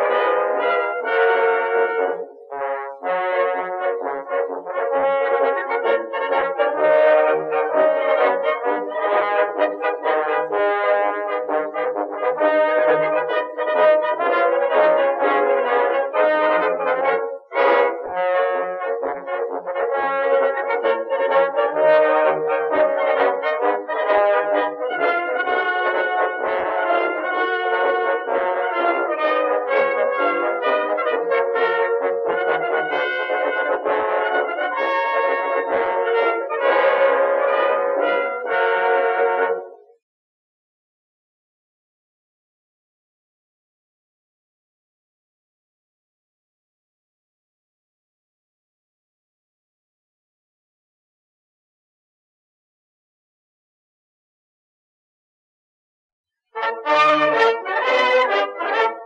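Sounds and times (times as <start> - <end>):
brass instruments playing melody: 0.0 - 39.9, 56.6 - 59.0.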